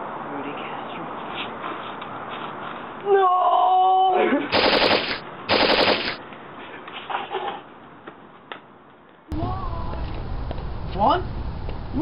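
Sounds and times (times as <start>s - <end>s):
machine-gun fire bursts: 4.5s - 6.2s.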